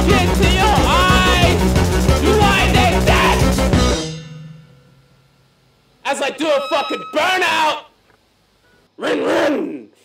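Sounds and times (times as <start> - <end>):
punk band final chord: 0.0 - 7.8
cymbals ringing: 3.7 - 7.9.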